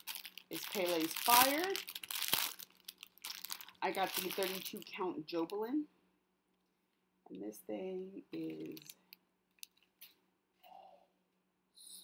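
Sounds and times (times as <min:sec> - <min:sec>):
packaging rustling: 0:00.0 - 0:05.0.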